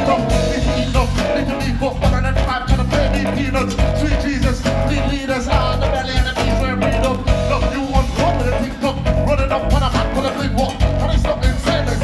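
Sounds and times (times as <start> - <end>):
live band playing upbeat groove: 0.0 - 12.0.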